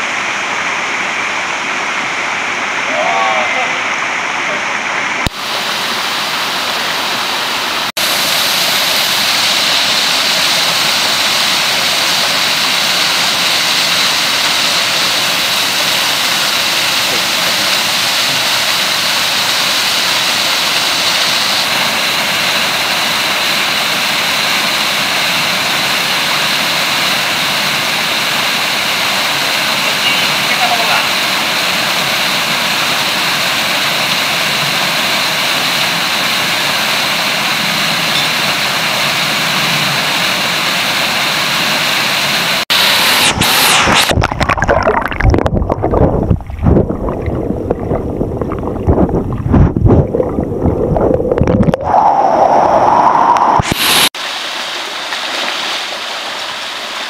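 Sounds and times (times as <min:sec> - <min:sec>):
waterfall rushing: 0:00.0 - 0:57.0.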